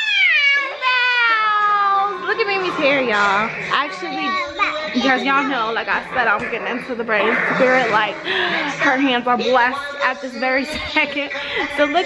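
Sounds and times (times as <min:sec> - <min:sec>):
woman squealing: 0:00.0 - 0:02.2.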